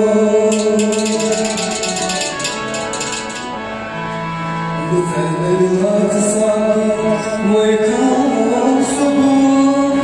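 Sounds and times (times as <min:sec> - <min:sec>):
harmonium playing held chords: 0:00.0 - 0:10.0
fast high rhythmic percussion: 0:00.4 - 0:03.7.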